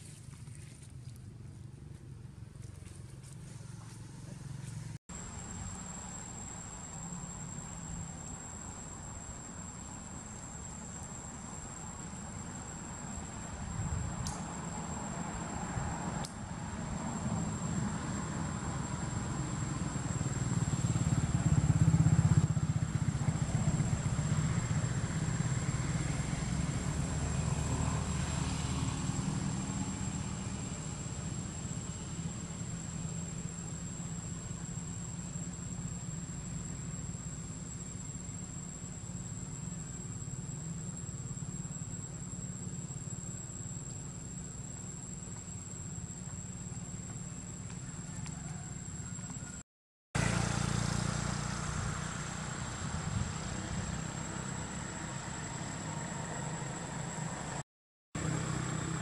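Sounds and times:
motorcycle engine running: 18.9s - 27.5s, 50.2s - 57.6s.

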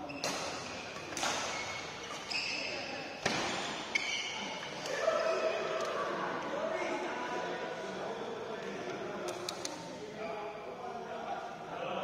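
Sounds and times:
shoe soles squeaking: 0.0s - 4.8s
racket hitting shuttlecock: 0.2s - 2.3s, 3.2s - 4.0s.

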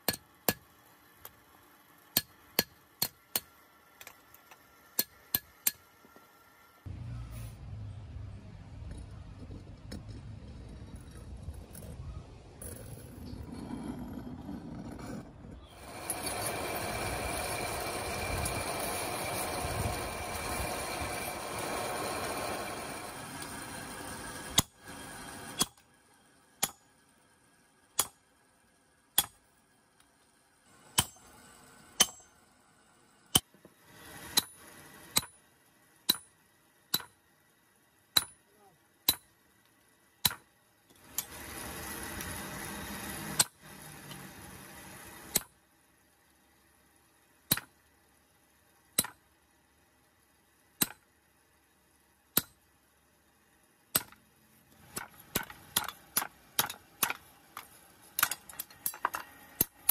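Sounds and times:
hammer striking chisel on steel: 28.0s - 28.2s, 29.2s - 29.4s, 30.9s - 31.3s, 32.0s - 32.3s, 36.1s - 36.3s, 36.9s - 37.2s, 38.1s - 38.4s, 52.4s - 52.6s, 54.9s - 57.2s.

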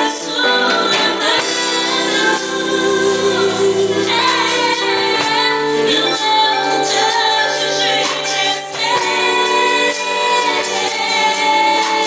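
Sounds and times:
voices singing gospel song: 0.0s - 12.0s.

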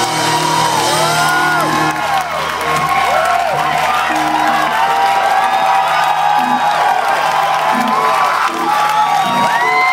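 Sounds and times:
crowd cheering and whistling: 0.0s - 9.9s.

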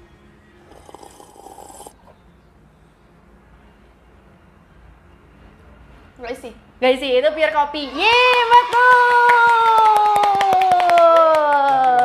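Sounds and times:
slurping sip from cup: 0.7s - 2.0s.

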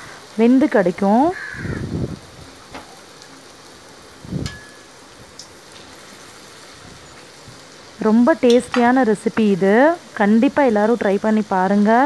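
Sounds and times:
hot oil sizzling: 0.0s - 12.0s.

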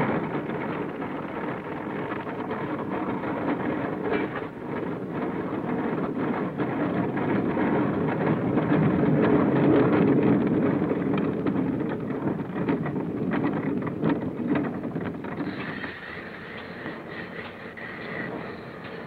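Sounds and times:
knocks and clatters: 0.0s - 19.0s
steady rumble: 0.0s - 19.0s.

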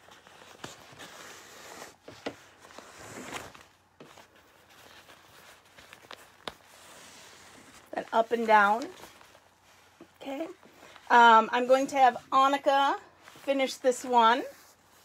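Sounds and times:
plastic and newspaper crinkling: 0.0s - 11.4s.

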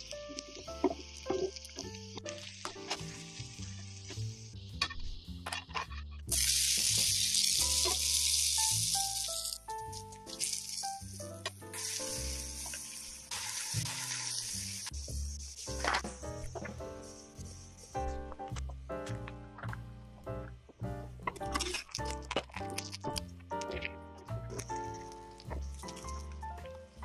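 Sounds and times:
potato sizzling in hot oil: 0.0s - 5.4s, 6.3s - 18.3s
background music: 0.0s - 27.0s.

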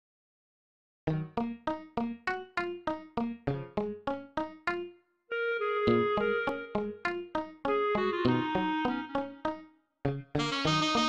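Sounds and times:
held keyboard note: 5.3s - 9.6s
piano-like keyboard chords: 5.3s - 9.6s.

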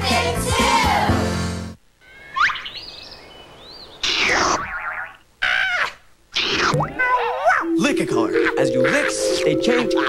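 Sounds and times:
rising whistle: 7.5s - 10.0s.

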